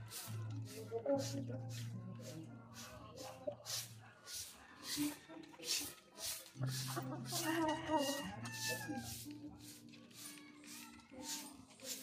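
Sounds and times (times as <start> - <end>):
rooster crowing: 7.4 - 9.2.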